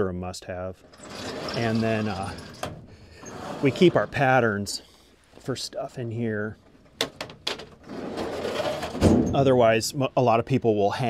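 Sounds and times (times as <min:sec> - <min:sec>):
metal drawer rolling shut: 0:00.8 - 0:04.2, 0:07.1 - 0:09.6
drawer closing thud: 0:08.7 - 0:09.4.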